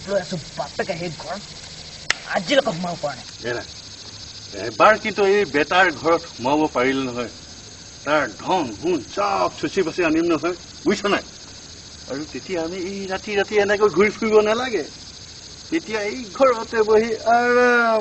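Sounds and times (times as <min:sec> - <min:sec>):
crickets chirring: 0:00.0 - 0:18.0
voices talking: 0:00.0 - 0:18.0.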